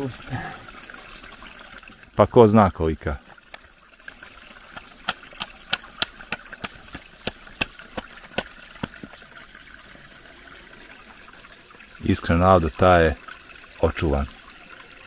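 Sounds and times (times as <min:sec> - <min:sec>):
stream trickling: 0:00.0 - 0:15.0
pick hammer chipping clay bank: 0:04.6 - 0:09.2.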